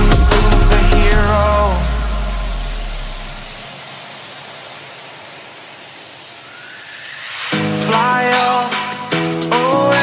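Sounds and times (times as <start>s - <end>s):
synthesized white-noise wash: 0.0s - 10.0s.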